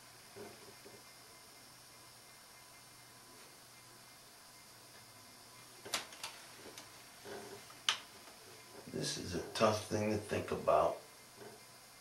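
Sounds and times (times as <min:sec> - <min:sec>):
small sharp clicks: 0:07.8 - 0:08.1.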